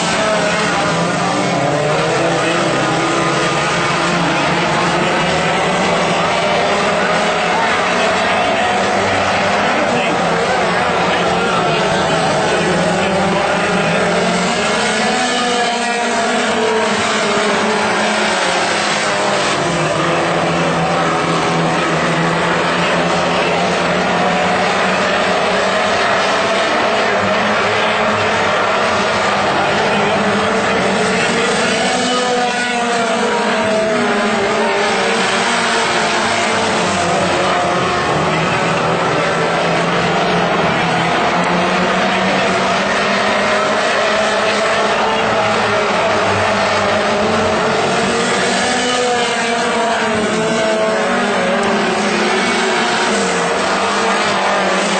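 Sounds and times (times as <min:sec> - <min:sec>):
race car engines: 0:00.0 - 0:54.9.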